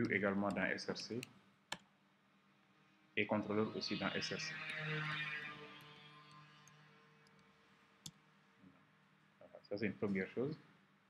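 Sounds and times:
man speaking: 0.0 - 1.2, 3.2 - 4.6, 9.5 - 10.6.

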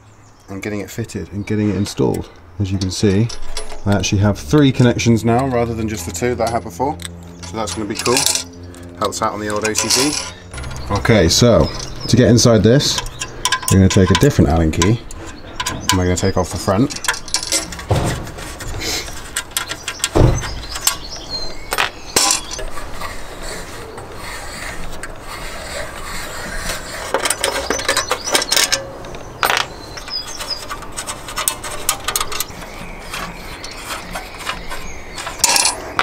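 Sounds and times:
metallic clicks and scrapes: 1.7 - 36.0
metal box knocks: 17.8 - 18.4.

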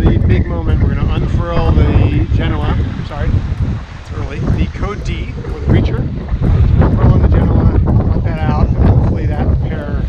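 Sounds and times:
man talking: 0.0 - 3.4, 4.0 - 6.2, 6.8 - 10.0
wind buffeting microphone: 0.0 - 10.0.

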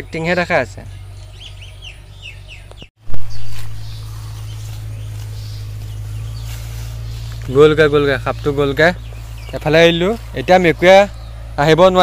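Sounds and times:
birds chirping: 0.0 - 12.0
steady low hum: 0.0 - 12.0.

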